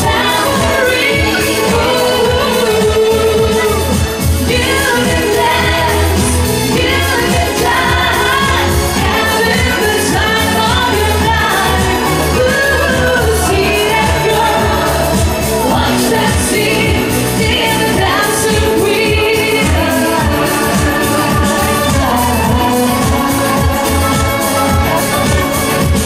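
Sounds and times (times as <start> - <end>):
woman singing into microphone: 0.0 - 25.9
pop backing music with bass beat: 0.0 - 26.0.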